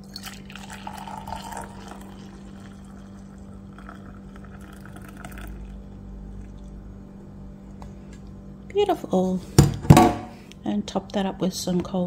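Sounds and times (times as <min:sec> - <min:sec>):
liquid pouring into a cup: 0:00.0 - 0:06.8
steady low hum: 0:00.0 - 0:12.0.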